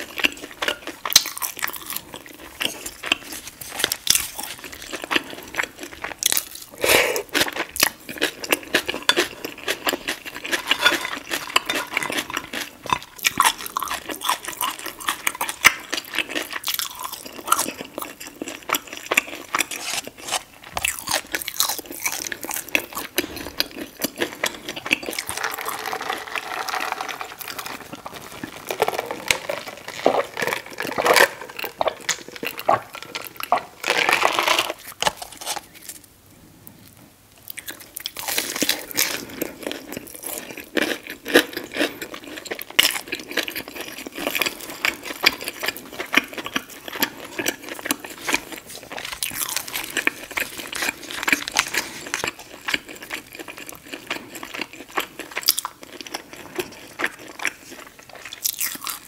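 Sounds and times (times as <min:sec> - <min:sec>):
person chewing crunchy food: 0:00.0 - 0:59.0.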